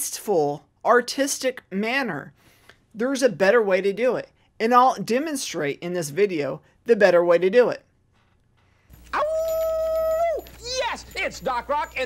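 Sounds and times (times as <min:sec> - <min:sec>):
long steady howl: 0:09.2 - 0:10.6.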